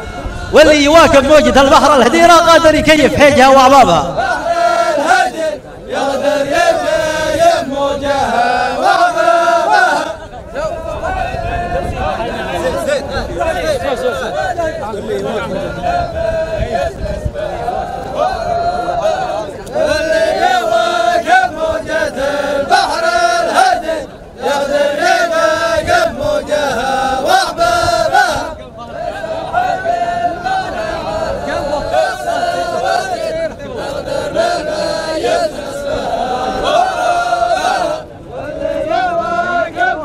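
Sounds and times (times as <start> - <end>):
men chanting in unison: 0.2 - 40.0.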